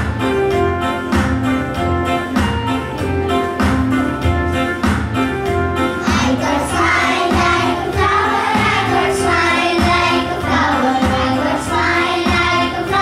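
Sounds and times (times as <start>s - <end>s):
backing music with steady beat: 0.0s - 13.0s
children singing together: 6.0s - 13.0s.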